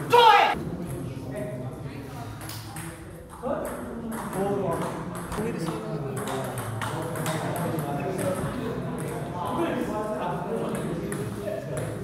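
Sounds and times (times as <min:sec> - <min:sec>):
table tennis ball tapping: 0:03.6 - 0:09.3.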